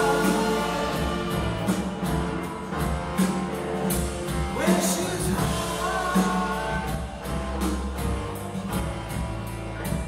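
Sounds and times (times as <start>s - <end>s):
keyboard chords: 0.0s - 4.7s
drum hits: 0.0s - 10.0s.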